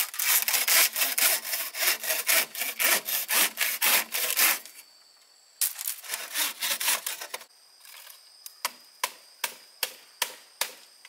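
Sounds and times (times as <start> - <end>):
hand saw cutting bamboo: 0.0 - 4.7, 6.0 - 7.5.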